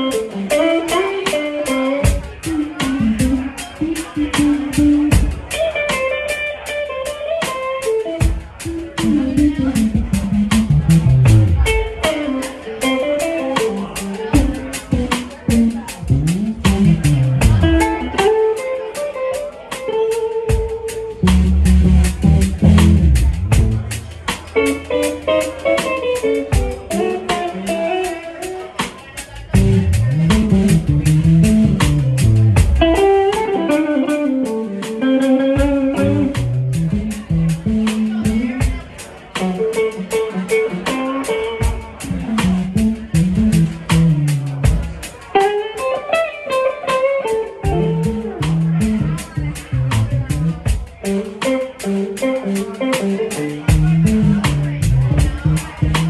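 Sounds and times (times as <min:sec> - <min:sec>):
bass guitar: 0:00.0 - 0:56.0
drums: 0:00.0 - 0:56.0
electric guitar lines: 0:00.0 - 0:56.0.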